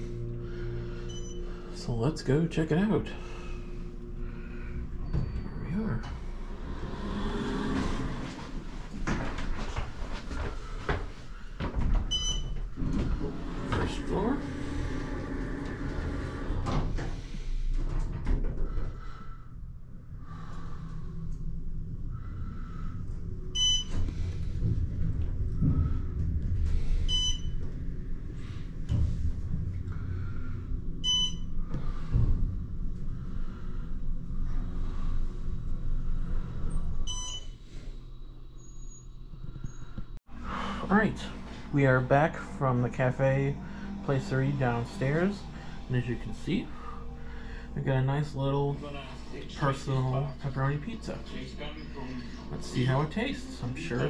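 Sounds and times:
elevator low rumble: 0.0 - 54.0.

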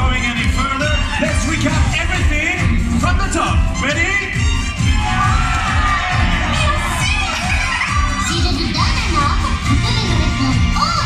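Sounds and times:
stage music with steady beat: 0.0 - 11.0
children shouting and cheering: 4.9 - 11.0.

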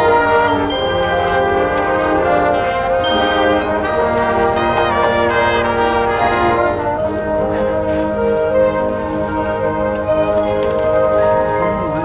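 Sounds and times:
marching band sustained chords: 0.0 - 12.0.

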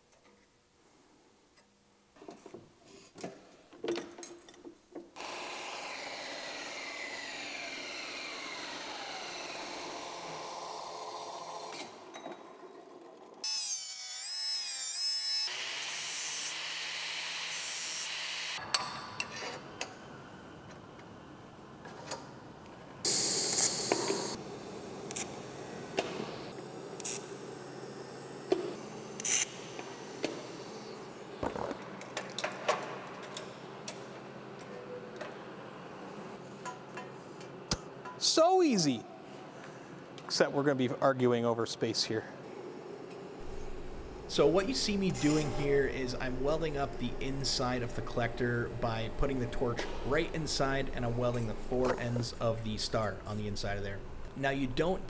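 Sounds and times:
bandsaw cutting metal tube: 5.2 - 12.0, 13.4 - 18.6.

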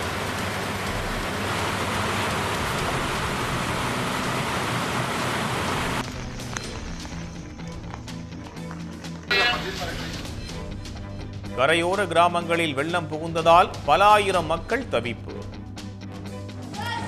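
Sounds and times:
water rushing over dam spillway: 0.0 - 6.0
background music: 0.0 - 17.0.

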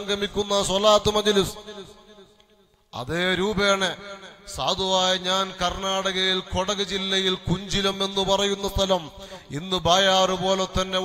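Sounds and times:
man chanting melodically: 0.0 - 2.4, 3.0 - 11.0.

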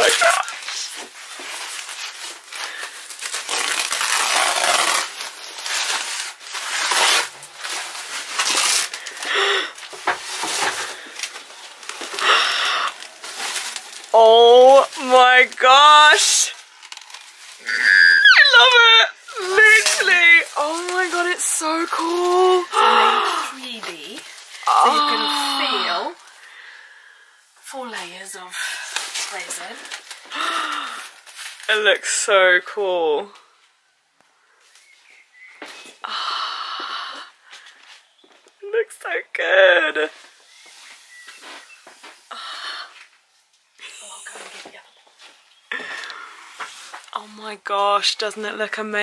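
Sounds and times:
plastic film rustling and crinkling: 0.0 - 26.5, 27.7 - 32.3, 40.1 - 49.0
woman squealing with delight: 17.7 - 19.4, 24.7 - 26.1.

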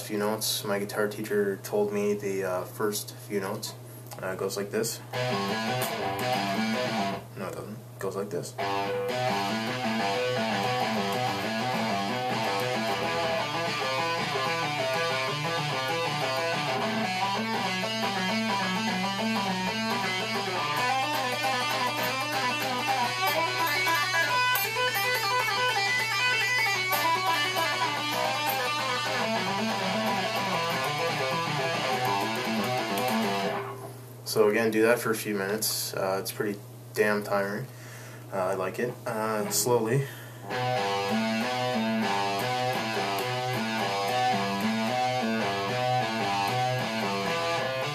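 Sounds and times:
electric guitar fast picked notes: 5.1 - 7.2, 8.6 - 33.8, 40.5 - 47.9.

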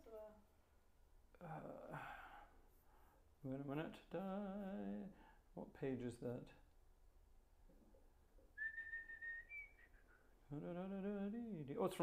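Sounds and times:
steady whistled note: 8.6 - 10.4.

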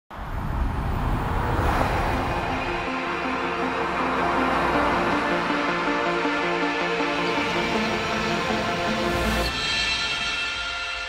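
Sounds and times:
moving car rumble: 0.1 - 9.4.

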